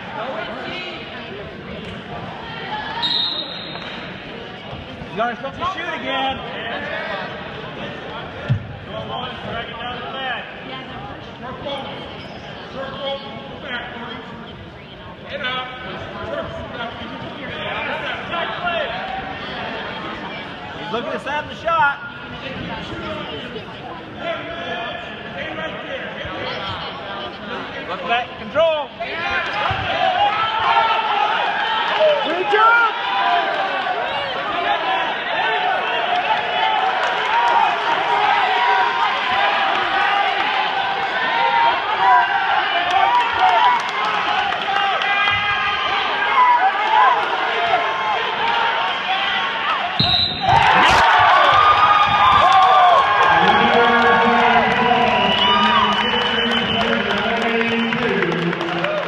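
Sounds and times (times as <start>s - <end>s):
brief high whistle: 3.0s - 4.0s, 50.0s - 50.5s
spectators yelling and shouting: 28.6s - 59.0s.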